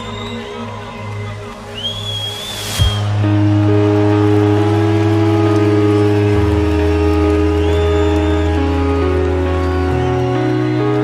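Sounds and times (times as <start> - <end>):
sustained synth chords: 2.7 - 11.0.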